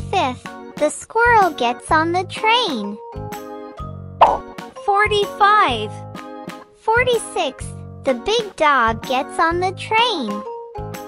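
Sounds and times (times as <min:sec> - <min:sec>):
light children's music: 0:00.0 - 0:11.0
cartoon plop sound effect: 0:04.2 - 0:04.5.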